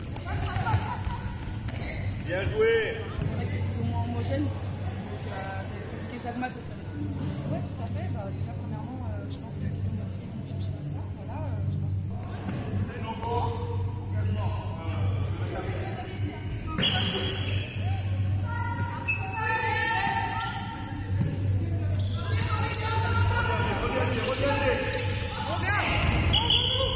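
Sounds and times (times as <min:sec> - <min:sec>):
players' voices and calls: 0:00.0 - 0:26.9.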